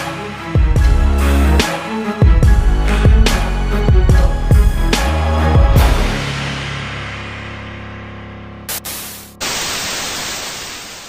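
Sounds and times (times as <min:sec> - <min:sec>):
background music: 0:00.0 - 0:09.4
television static hiss: 0:08.7 - 0:11.0.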